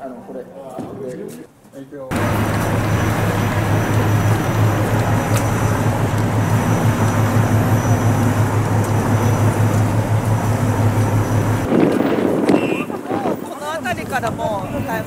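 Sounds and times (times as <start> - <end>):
continuous low hum: 2.1 - 11.7
traffic rush: 2.1 - 15.0.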